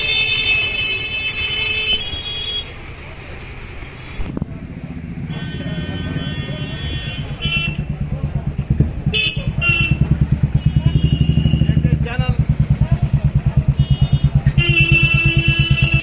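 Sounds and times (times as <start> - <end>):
motorcycle engine running: 4.3 - 16.0.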